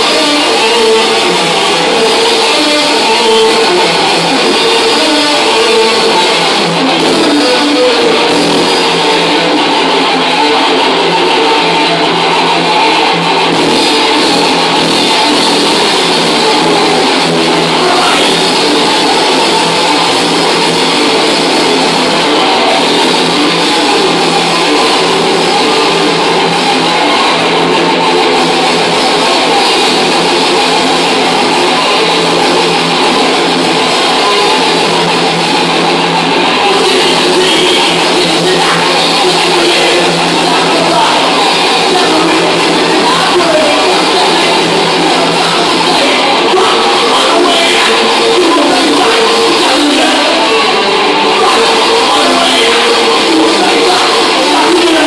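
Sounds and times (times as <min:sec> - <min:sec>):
metal band playing live: 0:00.0 - 0:55.0.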